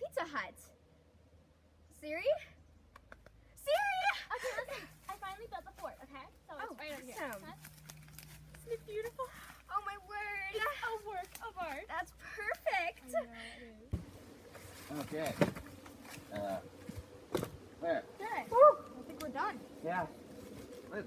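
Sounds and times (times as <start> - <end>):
girls talking excitedly: 3.6 - 7.6, 8.6 - 13.9, 18.2 - 19.8.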